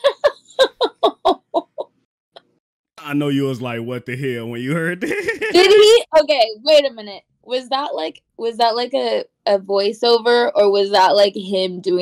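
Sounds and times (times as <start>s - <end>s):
loud burst of laughter: 4.9s - 5.6s.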